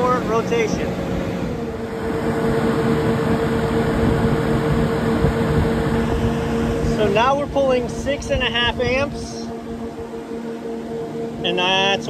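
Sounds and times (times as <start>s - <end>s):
rush of moving air: 0.0s - 10.2s
exhaust fan humming: 0.0s - 12.0s.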